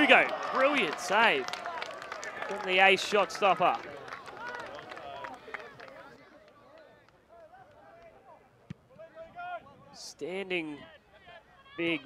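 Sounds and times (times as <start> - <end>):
players shouting: 0.0 - 6.1.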